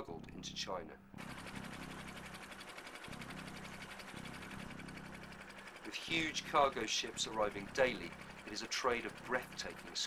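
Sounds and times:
machine low hum: 0.2s - 10.0s
machine clattering: 1.2s - 10.0s.

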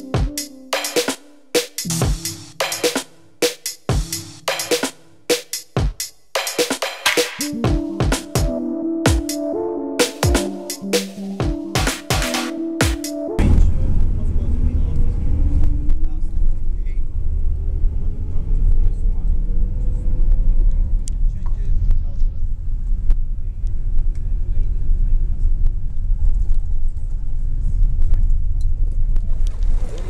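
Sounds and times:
vehicle engine and road rumble: 13.4s - 30.0s.

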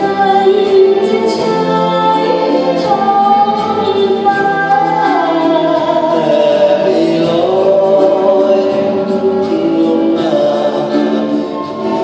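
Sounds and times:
orchestra playing long held notes: 0.0s - 12.0s.

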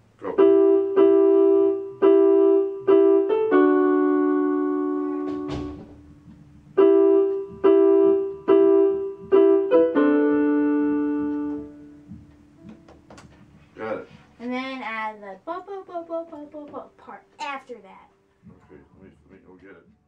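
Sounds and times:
electronic keyboard piano chords: 0.0s - 20.0s.

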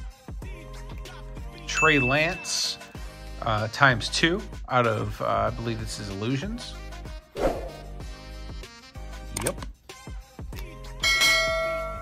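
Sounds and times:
background music: 0.0s - 12.0s
bell chime ringing: 1.7s - 2.9s.

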